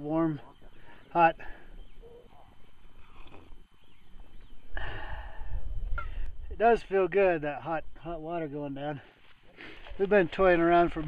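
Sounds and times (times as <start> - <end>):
man sipping hot water: 3.0 - 3.7.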